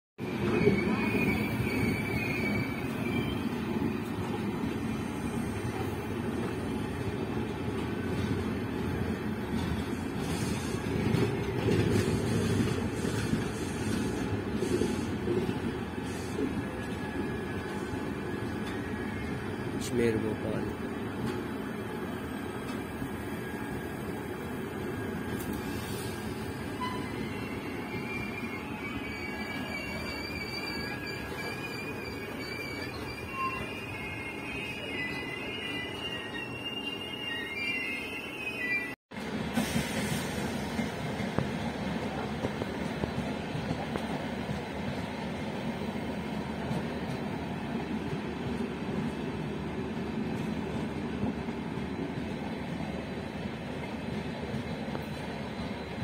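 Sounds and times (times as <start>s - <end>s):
train wheels squealing: 0.2s - 7.2s, 8.1s - 39.0s, 54.6s - 56.0s
train wheels rumbling on rails: 0.2s - 36.3s, 39.1s - 56.0s.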